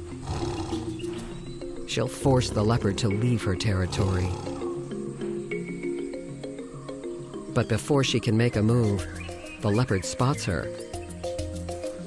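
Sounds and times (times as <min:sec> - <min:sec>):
big cat growling: 0:00.2 - 0:01.3, 0:02.3 - 0:04.8.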